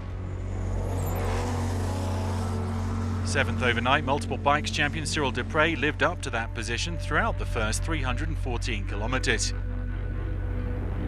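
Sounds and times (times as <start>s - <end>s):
buggy engine revving: 0.0s - 8.0s.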